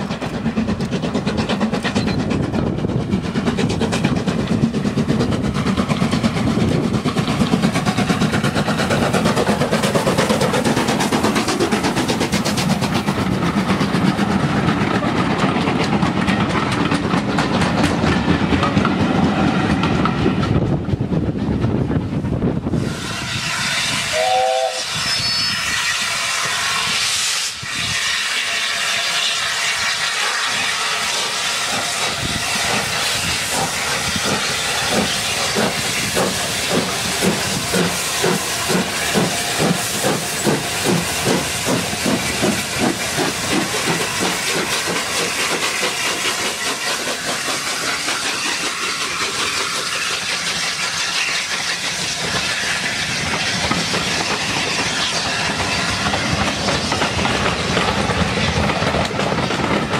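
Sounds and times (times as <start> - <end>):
steam hissing: 0.0 - 18.6, 22.4 - 59.9
steam locomotive chuffing: 0.0 - 59.9
train coaches rolling past: 0.0 - 59.9.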